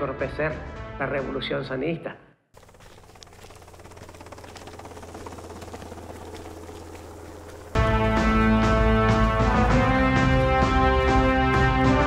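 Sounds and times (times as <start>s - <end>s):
helicopter rotor and engine drone: 2.6s - 12.0s.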